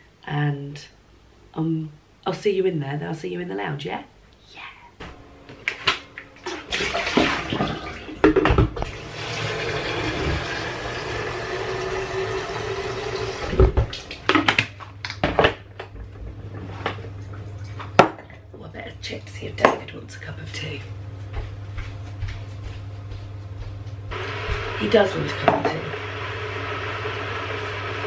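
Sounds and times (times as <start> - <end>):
steady low hum: 0.0 - 9.2, 13.5 - 28.0
water running from tap into kettle: 6.4 - 8.2, 8.8 - 13.9, 24.1 - 28.0.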